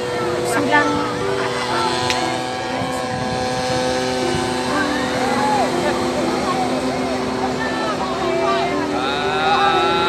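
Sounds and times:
light aircraft engine droning: 0.0s - 10.0s
people's voices: 0.0s - 10.0s.

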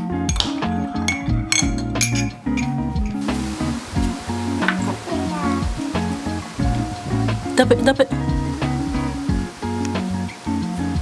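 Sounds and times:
background music with a beat: 0.0s - 11.0s
spoon clinking against a mug: 0.3s - 3.2s.

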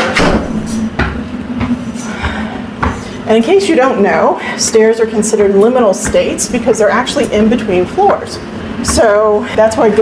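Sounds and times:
footsteps on stairs: 0.0s - 10.0s
steady low hum: 0.0s - 10.0s.

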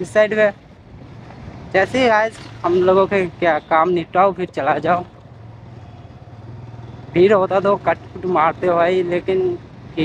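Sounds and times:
motorcycle engine running: 4.6s - 10.0s.

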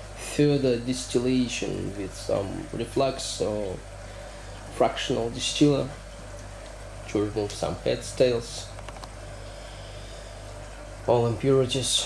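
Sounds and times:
machine humming and hissing: 0.0s - 12.0s.

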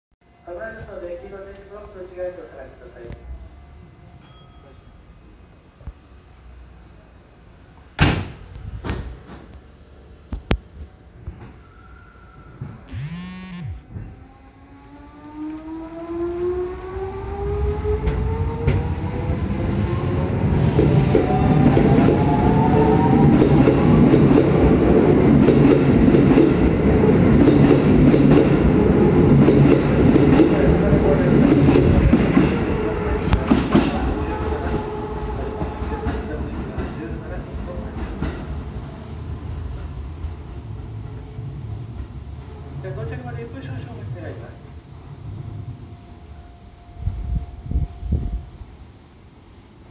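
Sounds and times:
electric train motor whine: 12.0s - 24.8s
train rumbling: 13.8s - 49.9s.

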